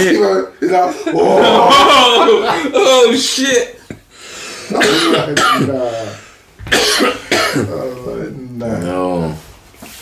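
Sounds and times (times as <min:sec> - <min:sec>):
man coughing: 0:04.7 - 0:05.9, 0:06.7 - 0:07.8.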